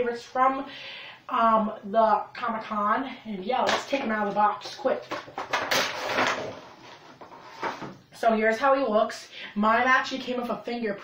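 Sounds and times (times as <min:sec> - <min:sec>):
cardboard and plastic rustling: 0:03.7 - 0:08.0.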